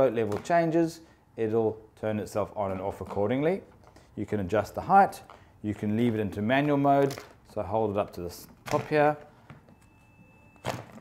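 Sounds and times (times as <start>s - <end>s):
faint steady high tone: 9.6s - 10.8s.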